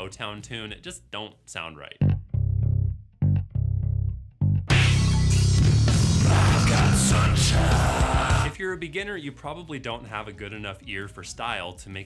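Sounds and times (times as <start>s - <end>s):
plucked electric bass notes: 2.0s - 8.5s.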